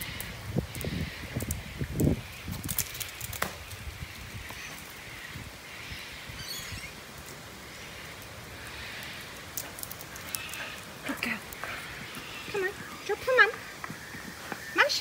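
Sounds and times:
rain on brick patio: 0.0 - 15.0.

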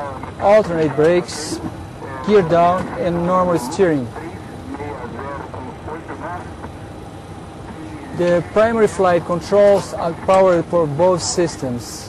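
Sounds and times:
aircraft cockpit hum and hiss: 0.0 - 12.0
faint voices talking: 0.0 - 12.0.

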